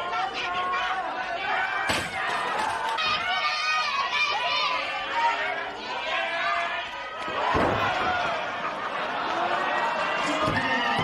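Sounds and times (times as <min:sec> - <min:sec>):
people's voices: 0:00.0 - 0:11.0.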